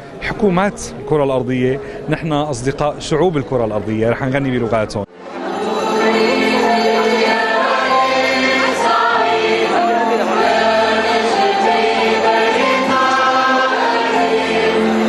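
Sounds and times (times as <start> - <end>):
mixed choir singing chords: 5.2 - 15.0.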